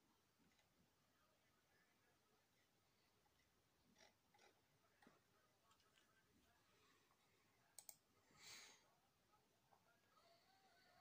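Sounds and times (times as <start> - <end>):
faint clicks: 7.7 - 8.0.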